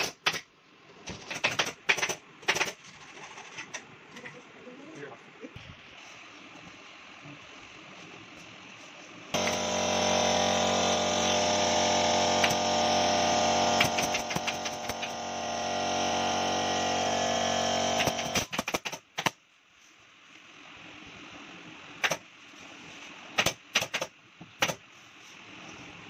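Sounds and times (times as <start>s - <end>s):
air compressor motor humming: 9.3s - 18.5s
pneumatic staple gun clicks: 18.0s - 19.3s.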